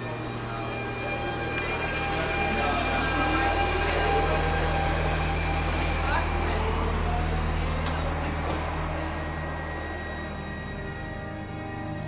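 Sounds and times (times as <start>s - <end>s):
train humming and rumbling: 0.0s - 12.0s.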